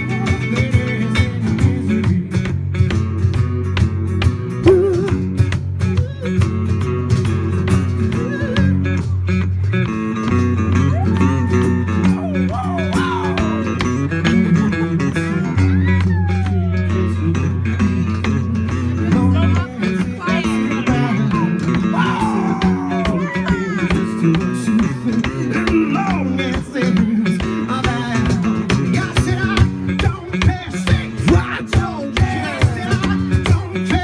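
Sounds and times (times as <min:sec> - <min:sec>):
held bass notes: 0:00.0 - 0:34.0
sliding bending lead guitar: 0:00.0 - 0:34.0
strummed acoustic guitar: 0:00.0 - 0:34.0.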